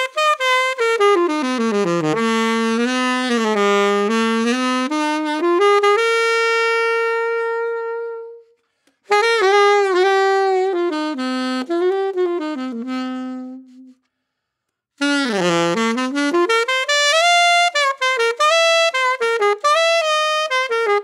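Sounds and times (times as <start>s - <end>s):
alto saxophone playing: 0.0s - 21.0s.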